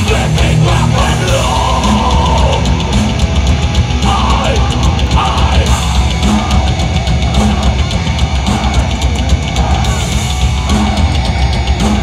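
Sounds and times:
distorted electric guitars: 0:00.0 - 0:12.0
fast driving drums: 0:00.0 - 0:12.0
thrash metal band playing live: 0:00.0 - 0:12.0.

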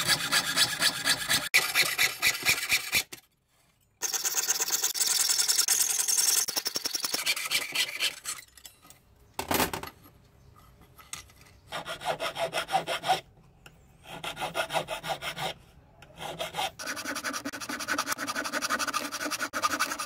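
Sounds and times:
hand file on metal: 0:00.0 - 0:03.2, 0:07.1 - 0:08.4, 0:11.7 - 0:13.2, 0:14.0 - 0:20.0
saw cutting metal sheet: 0:00.0 - 0:03.2.

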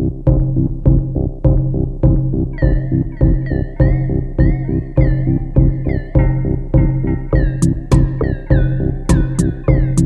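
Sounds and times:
low bass pulse: 0:00.0 - 0:10.0
synthesizer notes sliding down: 0:00.0 - 0:10.0
drum machine hits: 0:00.3 - 0:10.0.

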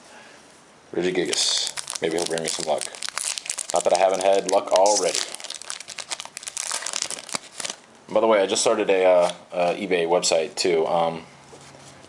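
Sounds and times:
foil wrapper crinkling: 0:01.2 - 0:07.9.

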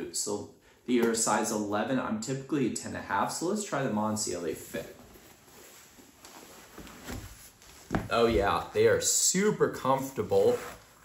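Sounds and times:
shoe handling rustle: 0:04.4 - 0:08.7.

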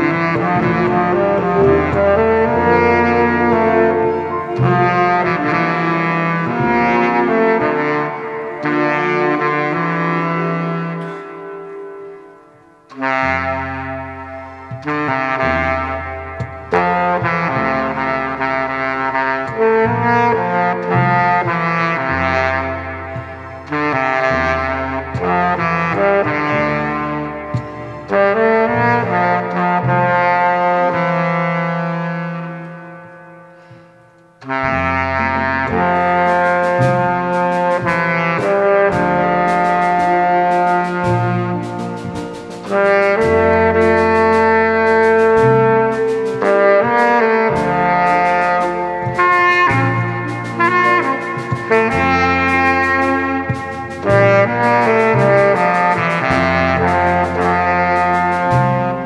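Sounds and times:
baritone saxophone solo: 0:00.0 - 0:59.0
saxophone ensemble accompaniment: 0:00.0 - 0:59.0.

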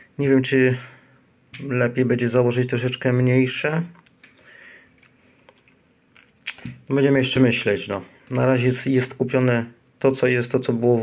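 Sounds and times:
man speaking: 0:00.2 - 0:01.0, 0:01.6 - 0:04.0, 0:06.9 - 0:11.0.

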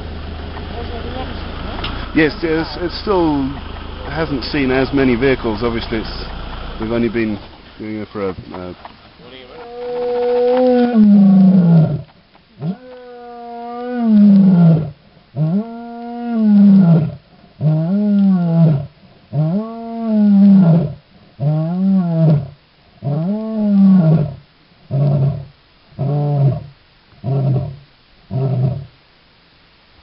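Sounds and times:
lioness roaring: 0:09.5 - 0:28.9.

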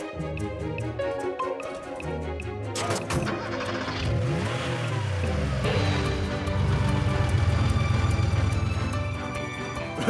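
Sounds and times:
cartoon truck engine revving: 0:02.7 - 0:09.1.

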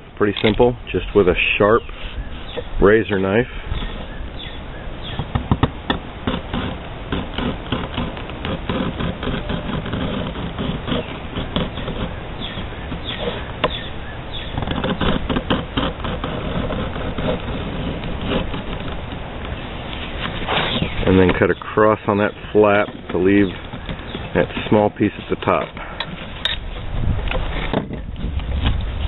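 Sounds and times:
knife scraping through leather: 0:06.2 - 0:13.8, 0:14.4 - 0:28.8.

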